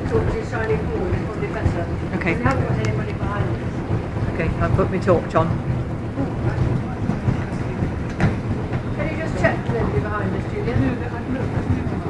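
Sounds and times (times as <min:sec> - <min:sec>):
boat engine rumbling: 0:00.0 - 0:12.0.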